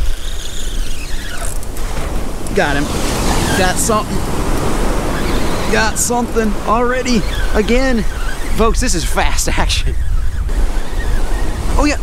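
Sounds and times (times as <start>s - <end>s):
ocean surf breaking: 0.0s - 12.0s
wind rumbling on microphone: 0.0s - 12.0s.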